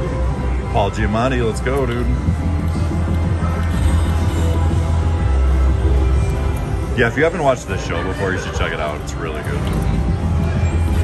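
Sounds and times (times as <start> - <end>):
electronic slot machine music: 0.0 - 11.0.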